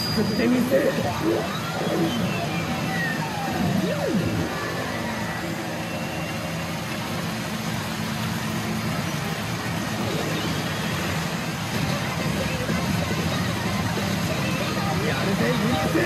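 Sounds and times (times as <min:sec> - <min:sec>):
sweeping electronic tone: 0:00.0 - 0:07.3
machines electronic effects: 0:00.0 - 0:16.0.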